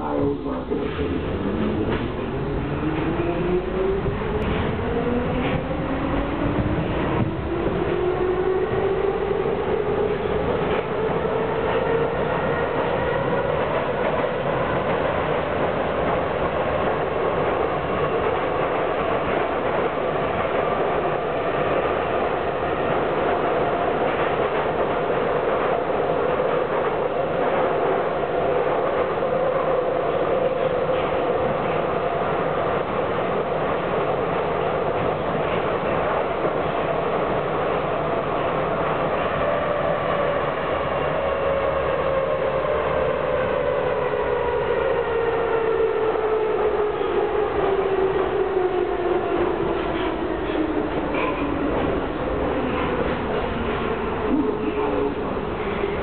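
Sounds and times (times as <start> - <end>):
wheels rumbling on rails: 0.0 - 39.5, 48.3 - 56.0.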